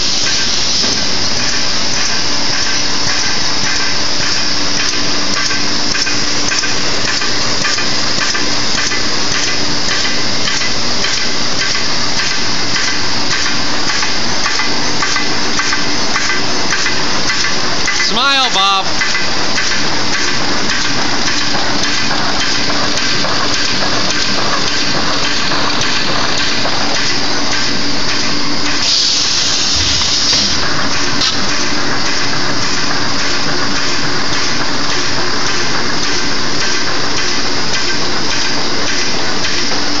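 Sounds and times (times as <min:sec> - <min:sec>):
machine hum: 0:00.0 - 0:40.0
machine clattering: 0:00.2 - 0:28.9, 0:29.6 - 0:40.0
burst of hiss: 0:28.8 - 0:30.7.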